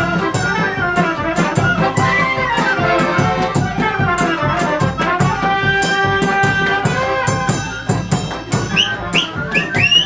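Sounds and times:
drum and cymbal beat: 0.0s - 10.0s
folk band dance tune: 0.0s - 10.0s
high rising whistles: 8.8s - 10.0s.

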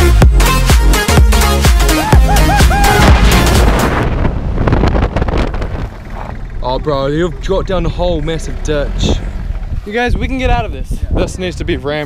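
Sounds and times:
wind buffeting microphone: 2.3s - 12.0s
van rumbling on gravel road: 3.0s - 10.9s.

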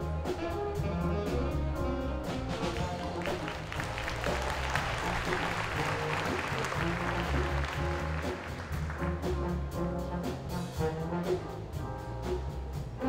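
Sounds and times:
jazz band playing: 0.0s - 13.0s
audience applause: 2.6s - 9.4s.

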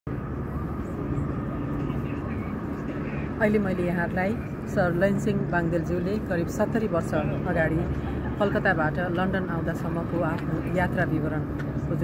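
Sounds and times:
faint steady hum: 0.1s - 12.0s
low engine rumble: 0.1s - 12.0s.

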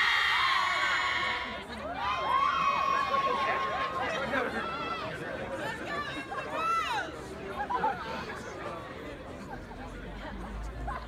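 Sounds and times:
audience chatter: 0.0s - 11.0s.

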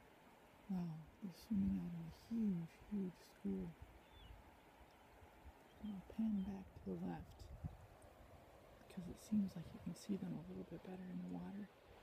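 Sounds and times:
faint low rumble: 0.0s - 12.0s.

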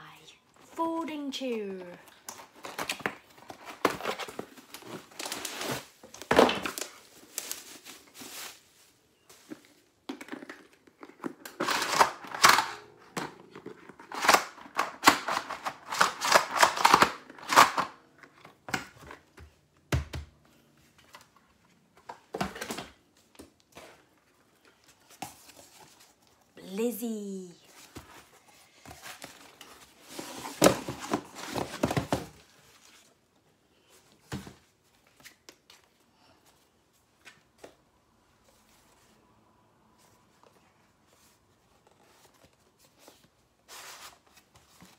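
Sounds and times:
cardboard box handled and opened: 23.7s - 33.2s, 41.1s - 44.9s.

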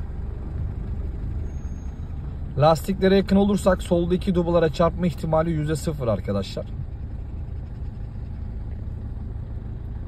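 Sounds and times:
car engine running at low revs: 0.0s - 10.0s.

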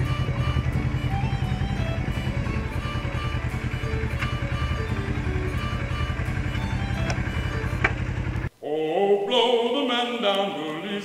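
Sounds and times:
background music: 0.0s - 7.9s
motorcycle engine idling: 0.0s - 8.5s.

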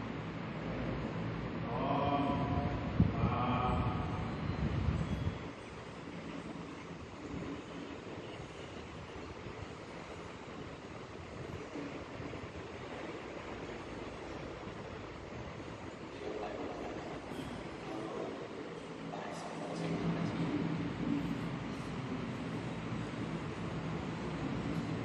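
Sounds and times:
electric fans running: 0.0s - 25.0s
rushing hall background noise: 0.0s - 25.0s.

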